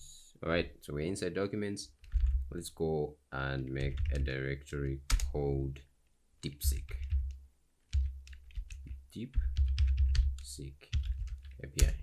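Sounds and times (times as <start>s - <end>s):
computer keyboard typing: 2.0s - 2.5s, 3.8s - 4.4s, 5.1s - 5.4s, 6.7s - 12.0s.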